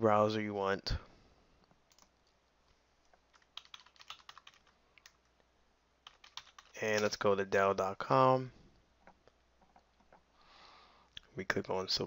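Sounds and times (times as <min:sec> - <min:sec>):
keyboard keystrokes clicking: 0:03.3 - 0:05.2, 0:06.0 - 0:07.1.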